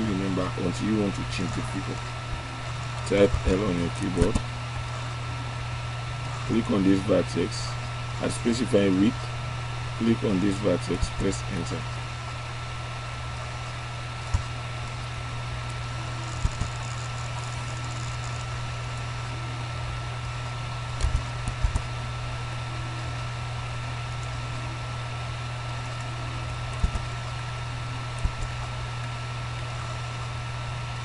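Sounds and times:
electrical hum and hiss: 0.0s - 31.0s
computer mouse clicks: 21.0s - 21.9s, 26.7s - 27.2s.

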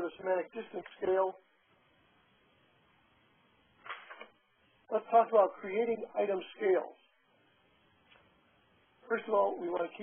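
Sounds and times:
man's voice: 0.0s - 1.4s, 4.9s - 7.0s, 9.0s - 10.0s
faint steady hiss: 0.0s - 10.0s.

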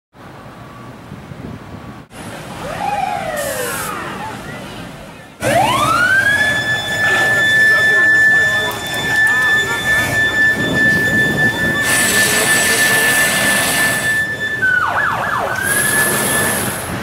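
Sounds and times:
police siren wailing: 2.6s - 4.6s, 5.4s - 17.0s.

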